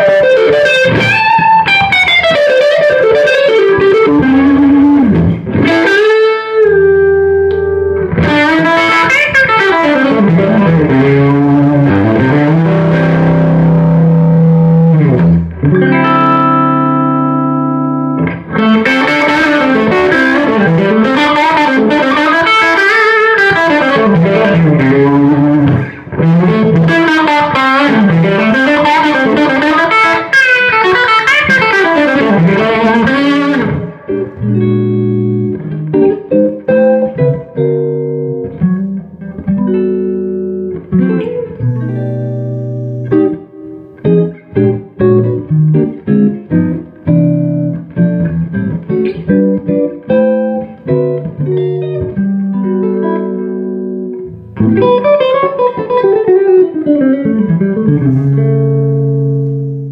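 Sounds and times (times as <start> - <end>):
electric guitar playing: 0.0 - 59.9.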